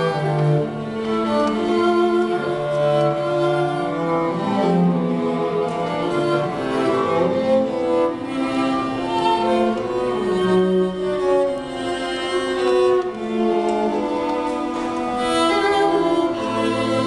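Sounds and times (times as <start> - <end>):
cello line: 0.0 - 17.0
viola: 0.0 - 17.0
violins: 0.0 - 17.0.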